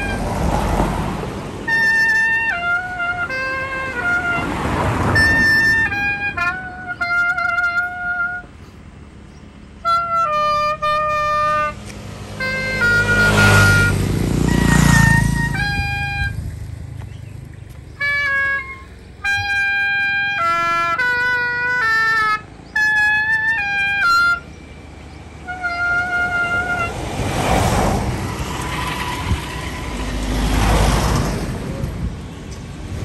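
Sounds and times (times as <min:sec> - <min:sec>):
solo woodwind melody: 0:00.0 - 0:00.7, 0:01.6 - 0:08.6, 0:09.8 - 0:16.5, 0:17.9 - 0:28.6
passing vehicle rumble: 0:00.0 - 0:33.0.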